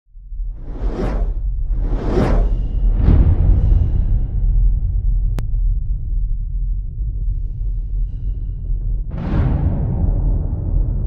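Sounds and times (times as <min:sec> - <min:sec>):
deep low rumble: 0:00.1 - 0:11.0
cinematic whoosh: 0:00.4 - 0:05.3.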